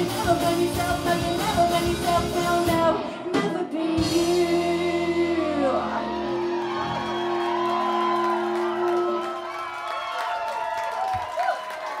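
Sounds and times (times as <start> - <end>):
audience cheering and whooping: 5.9 - 12.0.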